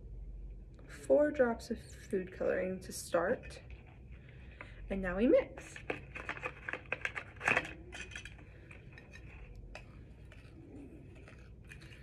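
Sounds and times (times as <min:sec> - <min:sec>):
utensil scraping glass bowl: 0:07.5 - 0:12.0.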